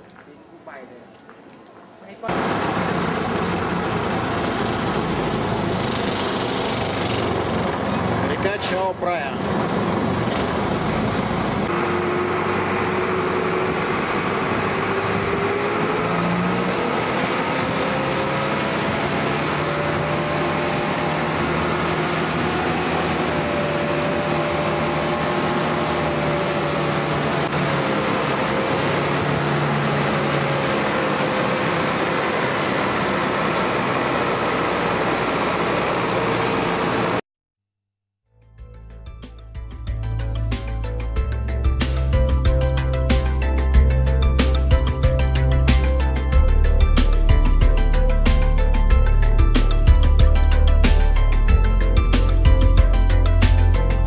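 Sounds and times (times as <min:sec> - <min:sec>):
wind: 0:00.0 - 0:37.2
boat engine running: 0:02.2 - 0:37.2, 0:39.8 - 0:54.0
water rushing: 0:07.3 - 0:37.2.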